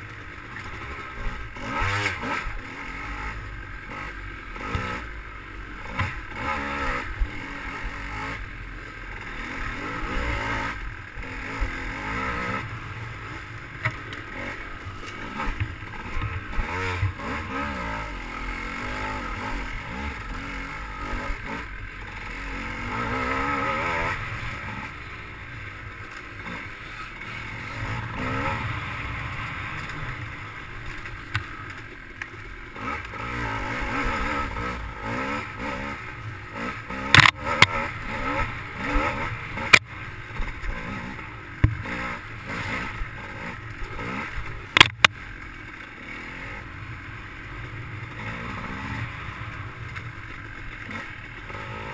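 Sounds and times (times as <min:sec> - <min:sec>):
dirt bike engine revving: 0:00.0 - 0:51.9
bike knocks and rattles: 0:37.0 - 0:37.7, 0:41.6 - 0:41.9, 0:44.7 - 0:45.1.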